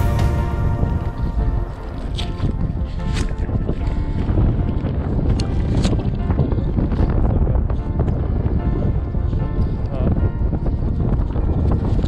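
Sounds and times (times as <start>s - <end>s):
background music: 0.0s - 12.0s
wind buffeting microphone: 0.0s - 12.0s.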